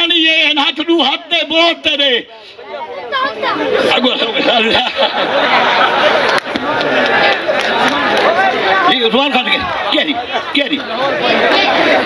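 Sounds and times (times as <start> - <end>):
men talking at once: 0.0 - 5.0, 6.6 - 12.0.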